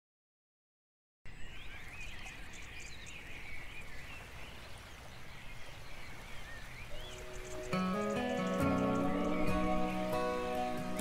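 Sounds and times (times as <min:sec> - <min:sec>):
small birds chirping: 0:01.3 - 0:11.0
music with held notes: 0:07.1 - 0:11.0.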